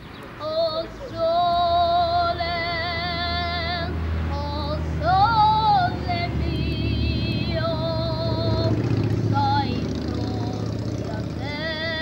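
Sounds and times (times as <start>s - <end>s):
boy singing with vibrato: 0.4s - 12.0s.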